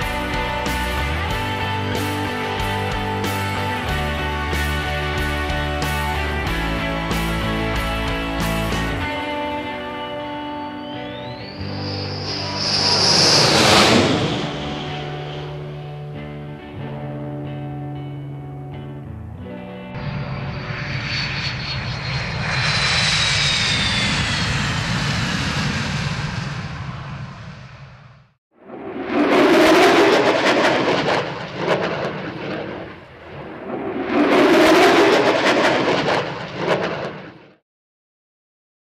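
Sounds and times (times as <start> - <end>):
jet engine roar with whine: 8.9 - 16.4, 20.0 - 37.6
crackling jet noise surges: 11.0 - 16.2.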